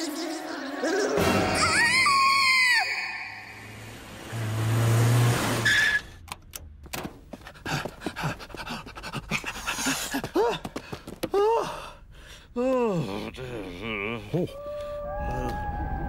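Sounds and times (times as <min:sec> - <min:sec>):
cartoon character high scream: 0:01.5 - 0:03.5.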